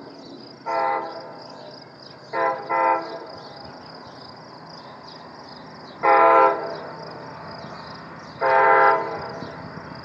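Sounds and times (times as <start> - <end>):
locomotive air horn blasts: 0.6 - 1.3, 2.3 - 3.3, 6.0 - 6.9, 8.4 - 9.4.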